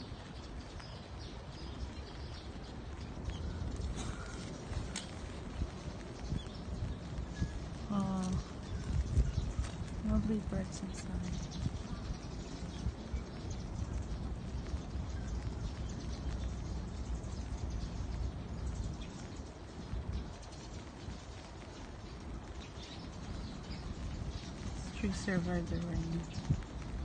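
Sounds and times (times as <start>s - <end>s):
faint bird chirps: 0.0s - 26.8s
rain pattering on an umbrella: 0.0s - 27.0s.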